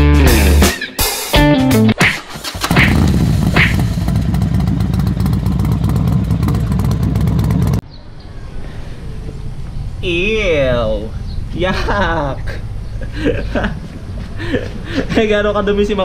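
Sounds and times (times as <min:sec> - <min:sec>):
motorcycle engine running: 0:02.4 - 0:07.8.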